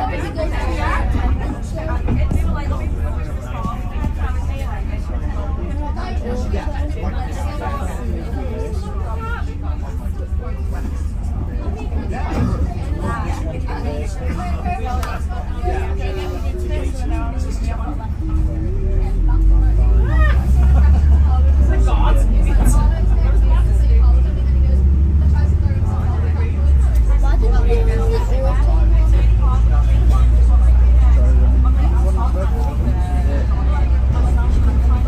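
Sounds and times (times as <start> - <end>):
bus engine rumbling: 0.0 - 35.0
passengers chattering: 0.0 - 35.0.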